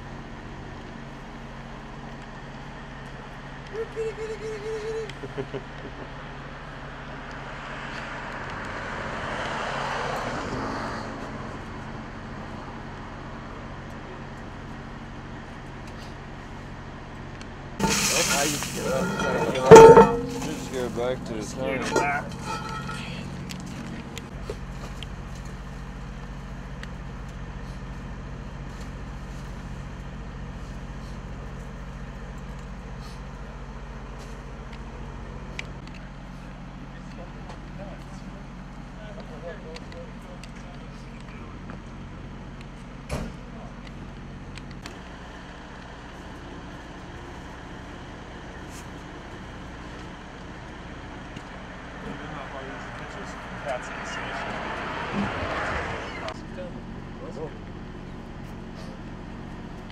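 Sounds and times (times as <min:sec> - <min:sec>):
diesel engine idling: 0:11.4 - 0:59.9.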